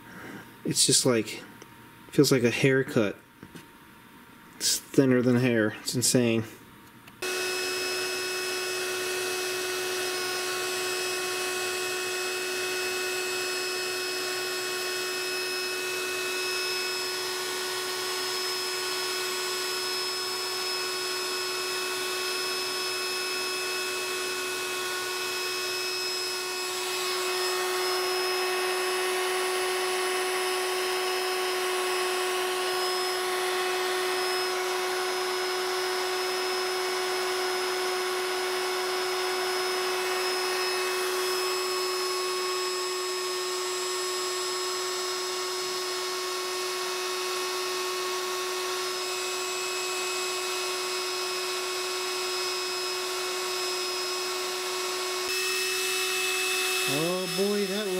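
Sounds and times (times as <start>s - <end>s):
stepper motors whining: 7.2s - 47.0s, 55.2s - 57.9s.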